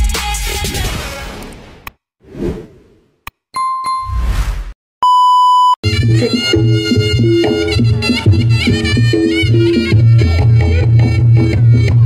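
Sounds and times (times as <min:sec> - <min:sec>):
whoosh: 0:02.2 - 0:03.0, 0:04.1 - 0:04.8
loud steady beep: 0:05.0 - 0:05.8.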